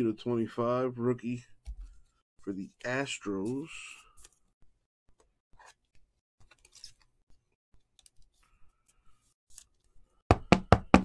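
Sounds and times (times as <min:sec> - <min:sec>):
knocking on tabletop: 0:10.3 - 0:11.0.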